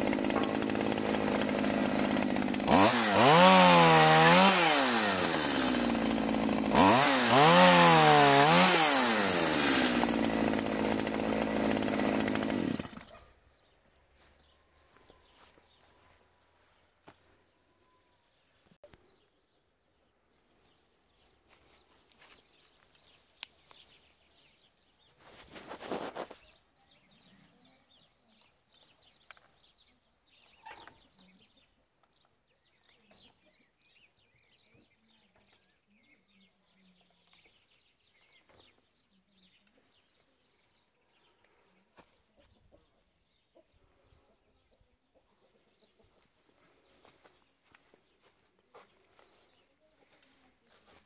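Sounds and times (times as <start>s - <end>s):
faint bird chirping: 26.2s - 51.0s.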